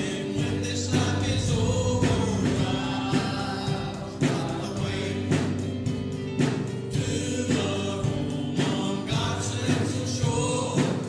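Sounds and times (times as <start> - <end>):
choir singing gospel music: 0.0 - 11.0.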